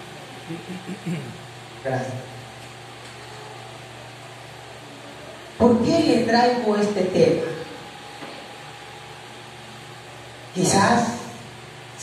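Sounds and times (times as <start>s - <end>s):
low electrical hum with hiss: 0.0s - 12.0s.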